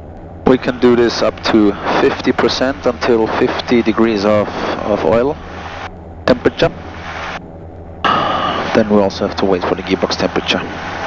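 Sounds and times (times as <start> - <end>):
aircraft engines droning: 0.0 - 11.0
man speaking: 0.5 - 5.4, 6.3 - 6.8, 8.1 - 10.8.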